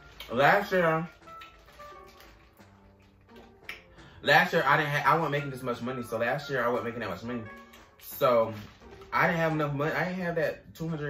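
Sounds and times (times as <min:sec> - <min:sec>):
plastic bag crinkling: 0:00.0 - 0:04.2, 0:06.6 - 0:10.1
soft background music: 0:00.0 - 0:11.0.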